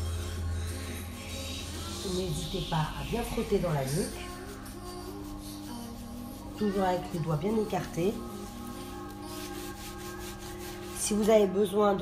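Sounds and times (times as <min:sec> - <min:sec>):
fingertips scrubbing wet hair: 0:01.5 - 0:11.6.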